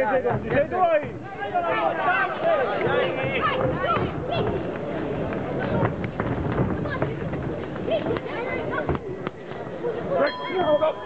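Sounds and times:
busy hall background: 0.0 - 11.0.

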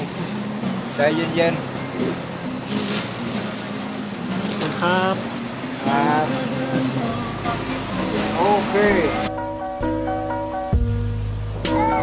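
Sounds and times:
van engine idling: 0.0 - 12.0
faint voices: 0.6 - 9.3.

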